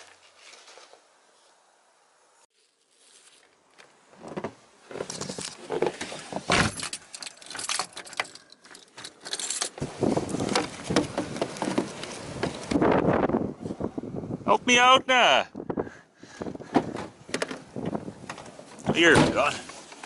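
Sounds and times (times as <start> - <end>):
footsteps crunching in snow: 2.5 - 3.7
keys jangling: 6.7 - 9.8.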